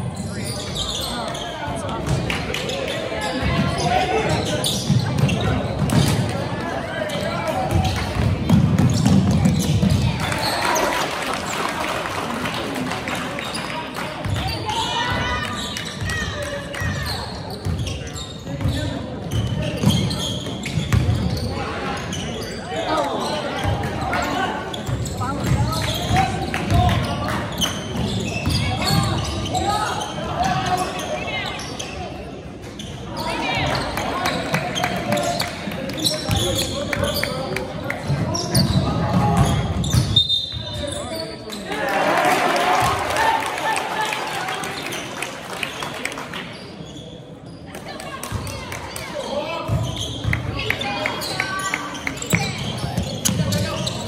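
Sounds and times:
people talking and calling out: 0:00.0 - 0:54.0.

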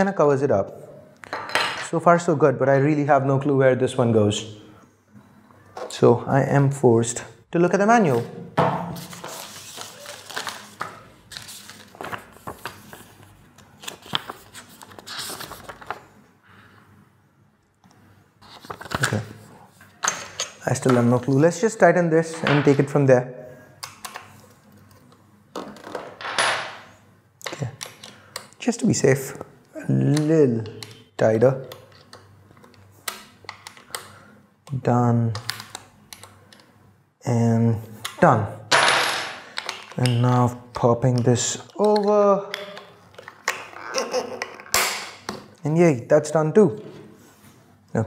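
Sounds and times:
paper rustling and crinkling: 0:09.0 - 0:16.2, 0:18.4 - 0:19.4.

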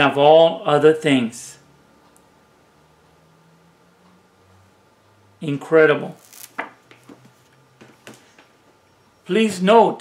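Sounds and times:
book rustling: 0:06.2 - 0:08.5.

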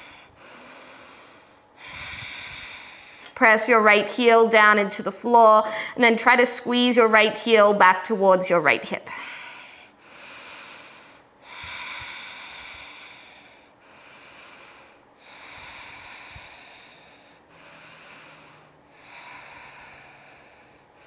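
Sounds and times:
woman breathing slowly: 0:00.0 - 0:03.4, 0:05.4 - 0:06.0, 0:09.1 - 0:21.0.

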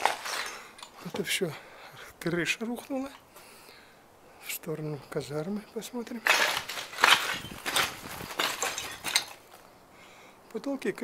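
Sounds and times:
footsteps crunching over debris: 0:00.0 - 0:01.4, 0:06.1 - 0:09.7.

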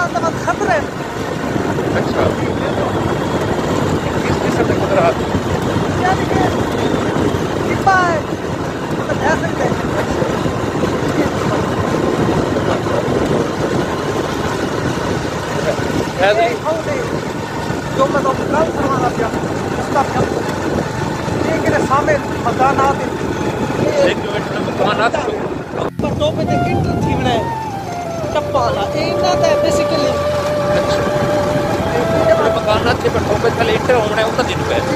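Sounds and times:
motorcycle engine running: 0:00.0 - 0:34.9
wind on microphone: 0:00.0 - 0:34.9
brief voices: 0:26.8 - 0:33.9.

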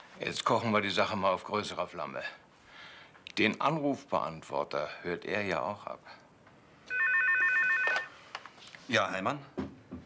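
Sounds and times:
desk telephone ringing: 0:06.9 - 0:08.2.

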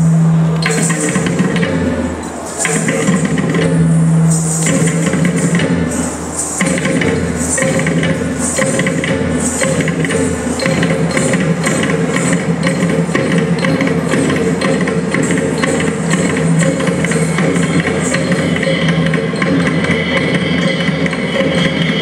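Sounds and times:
cymbal strokes: 0:00.0 - 0:22.0
hand drum strokes: 0:00.0 - 0:22.0.

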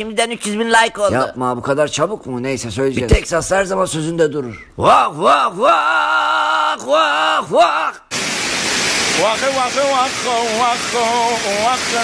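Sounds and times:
man singing wordless notes: 0:04.8 - 0:05.9, 0:09.2 - 0:12.0
waterfall rushing: 0:08.1 - 0:12.0.

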